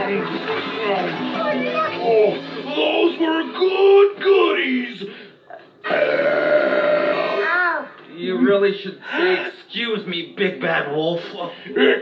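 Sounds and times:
long comic burp: 5.8 - 7.5.

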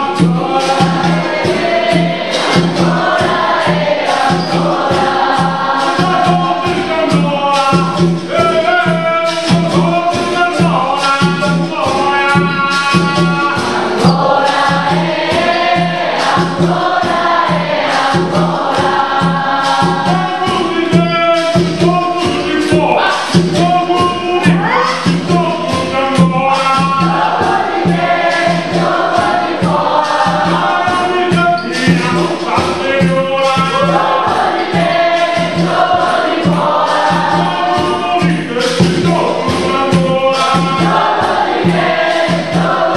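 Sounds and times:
berimbaus playing: 0.0 - 42.9
group singing in chorus: 0.0 - 42.9
hand drum steady beat: 0.0 - 42.9
musical bows struck rhythmically: 0.0 - 42.9.

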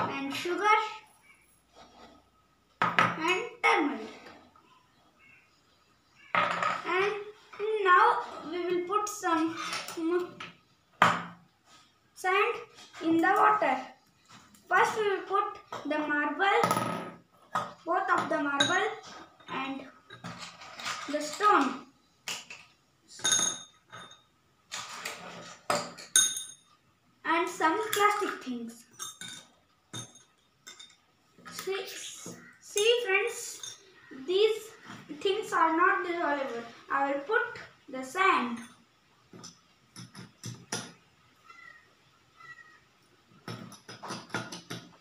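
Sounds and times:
marbles clinking in steel cups: 18.0 - 21.6, 22.3 - 25.0, 25.8 - 26.8, 27.5 - 34.6, 38.4 - 38.8
metal spoon clinking on steel cups: 22.5 - 24.3, 25.7 - 26.8, 28.8 - 31.1, 32.4 - 34.1, 38.5 - 38.8.

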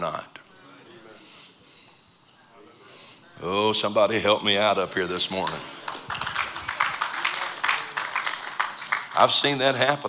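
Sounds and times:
scattered clapping: 5.4 - 9.9.

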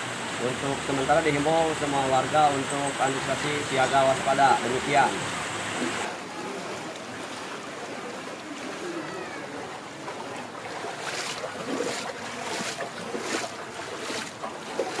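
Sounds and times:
water rushing through drain channel: 0.0 - 15.0
short water splashes: 0.8 - 15.0.

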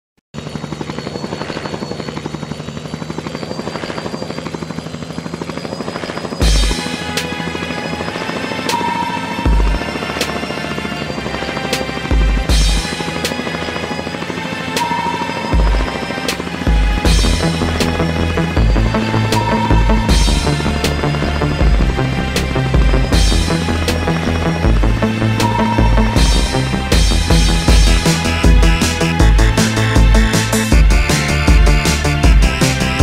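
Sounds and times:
helicopter rotor and engine: 0.3 - 33.0
music with heavy beat: 18.6 - 22.1, 24.7 - 33.0.

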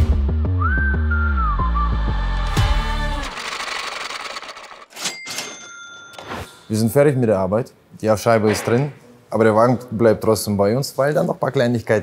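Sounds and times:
cash register clicks: 3.2 - 6.5
ringing bell-like tones: 5.0 - 7.1.

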